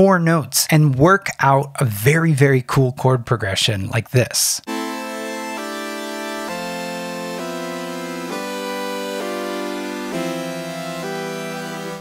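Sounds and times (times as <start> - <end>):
synth sustained chords: 4.7 - 12.0.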